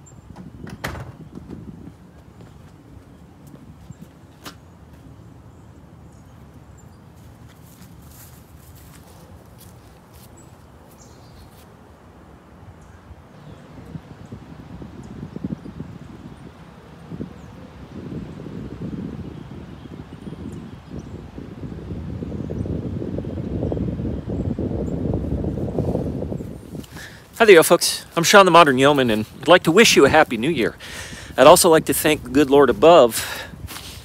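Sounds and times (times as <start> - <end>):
wind buffeting microphone: 0.0 - 6.2, 12.6 - 34.0.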